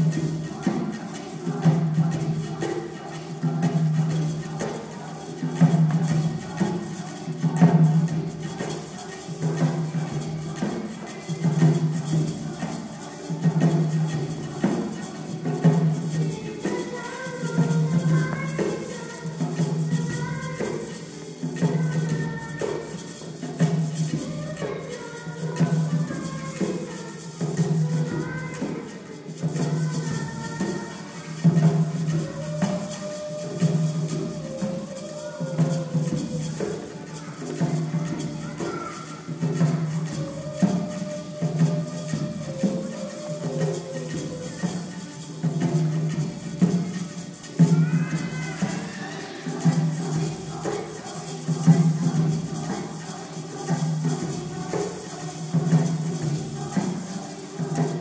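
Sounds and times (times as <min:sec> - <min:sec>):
hand drum: 0:00.0 - 0:58.0.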